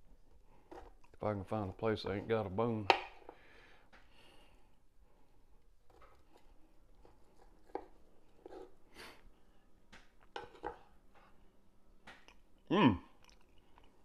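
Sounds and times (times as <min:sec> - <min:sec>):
knife cutting on wooden board: 0:05.9 - 0:08.7.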